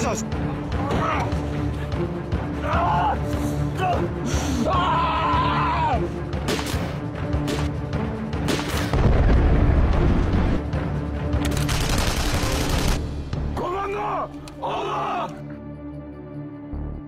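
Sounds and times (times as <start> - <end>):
trailer music: 0.0 - 17.0
man shouting: 2.6 - 6.1, 13.6 - 15.4
explosion: 8.9 - 10.6.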